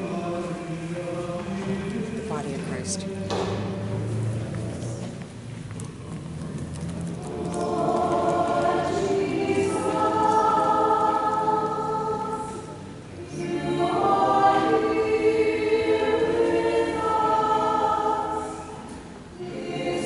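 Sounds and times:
choir singing a slow hymn: 0.0 - 5.5, 6.8 - 20.0.

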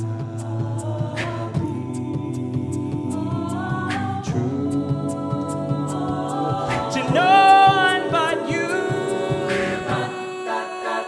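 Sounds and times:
vocal percussion hits: 0.0 - 10.6
a cappella ensemble singing chords: 0.0 - 11.0.

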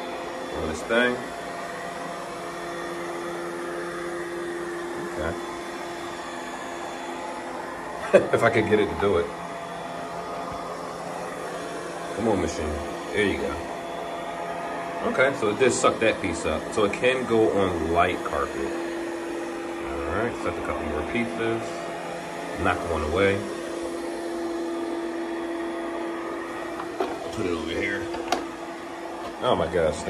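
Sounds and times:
robotic vacuum cleaner whirring: 0.0 - 30.0.

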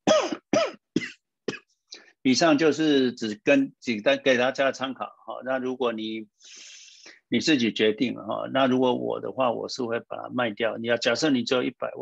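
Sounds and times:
man coughing: 0.0 - 1.8.

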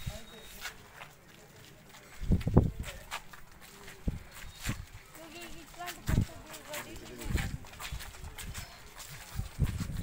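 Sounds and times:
people talking indistinctly: 0.0 - 9.8.

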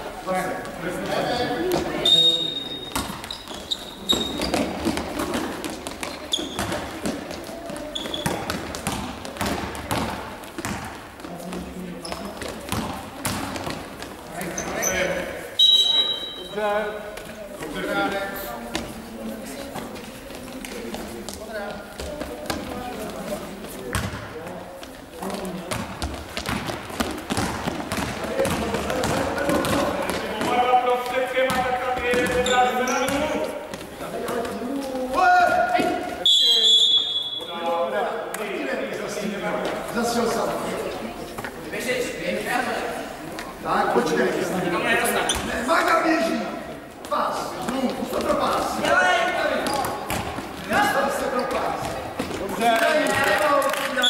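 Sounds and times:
players' voices: 0.0 - 54.0
referee's whistle: 2.0 - 3.0, 15.6 - 16.5, 36.2 - 37.5
basketball bouncing on court: 2.9 - 14.0, 23.9 - 24.3, 25.6 - 30.6, 31.4 - 33.8, 49.6 - 50.7.

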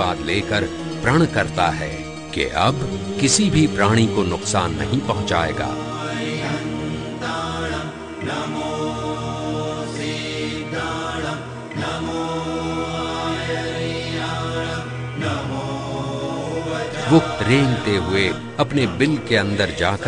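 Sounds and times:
long held sung notes: 0.0 - 20.0
steady low drone: 0.0 - 20.0.

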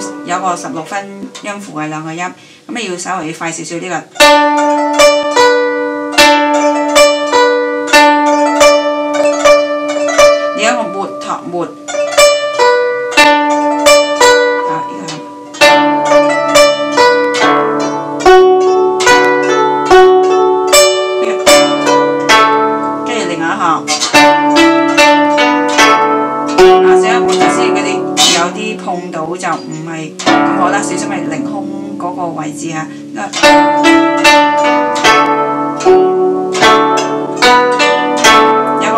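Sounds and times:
plucked guzheng melody: 0.0 - 38.9.

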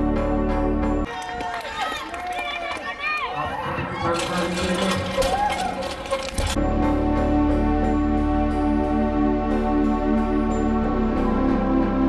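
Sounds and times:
faint crowd: 1.0 - 6.5.

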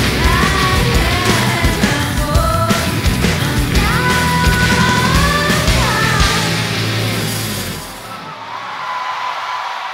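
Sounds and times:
rock band chord ringing out: 0.0 - 8.3.

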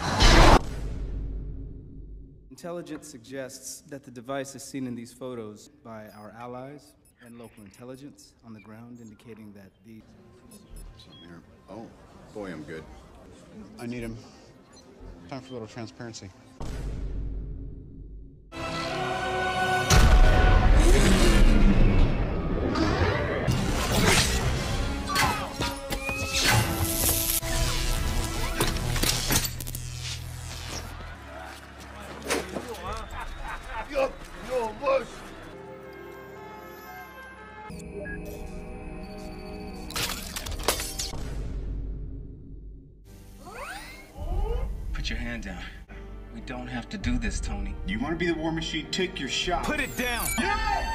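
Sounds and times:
dramatic orchestral music: 18.5 - 29.1, 31.1 - 40.0, 44.6 - 50.9
low music: 44.2 - 50.4.

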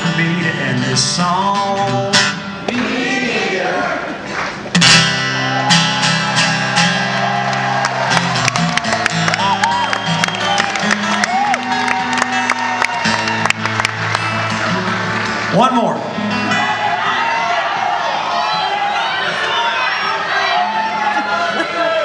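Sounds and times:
acoustic guitar strumming: 0.0 - 3.0, 4.5 - 18.7.

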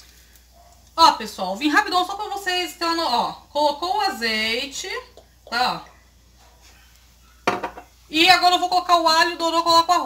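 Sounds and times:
cookware clattering: 7.4 - 7.9.

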